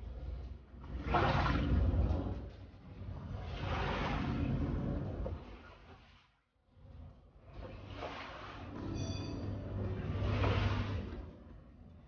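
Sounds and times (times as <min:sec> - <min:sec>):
water swished across hard floor: 0:00.8 - 0:06.5, 0:07.6 - 0:08.8, 0:10.0 - 0:11.4.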